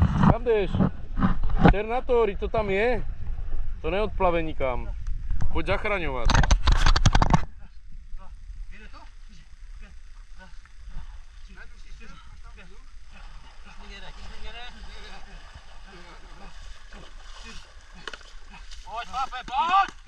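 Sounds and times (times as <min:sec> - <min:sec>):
low steady rumble: 0:00.0 - 0:20.0
people talking indistinctly: 0:07.4 - 0:19.9.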